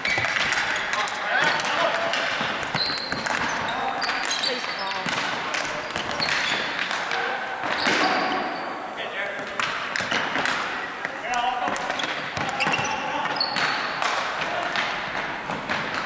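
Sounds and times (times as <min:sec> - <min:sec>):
players shouting: 0:00.0 - 0:04.9
sneakers squeaking on hardwood: 0:00.0 - 0:06.8, 0:07.6 - 0:08.8, 0:10.8 - 0:14.0.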